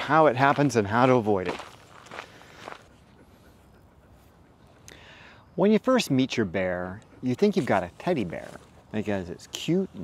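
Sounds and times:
soft rustles of movement: 0:07.4 - 0:09.8.

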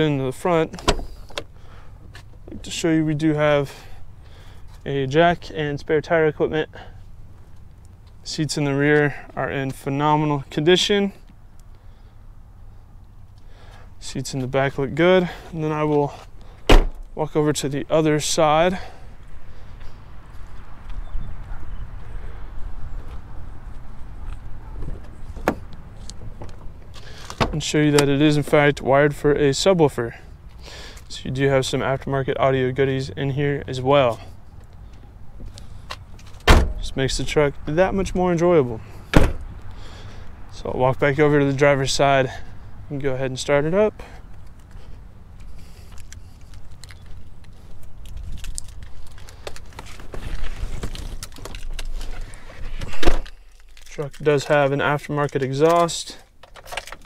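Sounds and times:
truck door opening: 0:00.6 - 0:01.5, 0:16.6 - 0:17.1, 0:24.7 - 0:28.1, 0:35.4 - 0:37.0, 0:39.1 - 0:39.5, 0:52.6 - 0:53.4
footsteps on asphalt: 0:07.1 - 0:08.3, 0:18.5 - 0:27.4, 0:43.8 - 0:53.5.

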